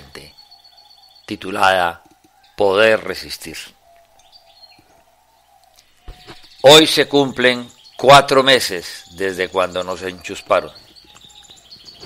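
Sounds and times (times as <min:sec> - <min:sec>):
faint bird chirps: 0:00.0 - 0:12.0.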